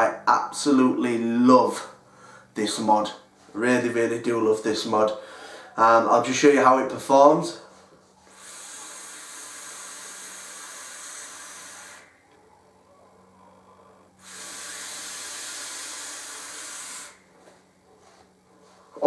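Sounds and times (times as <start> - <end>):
person exhaling: 5.2 - 5.8, 8.2 - 12.2, 13.4 - 17.3
airy hiss of e-cigarette draw: 8.3 - 12.1, 14.2 - 17.2.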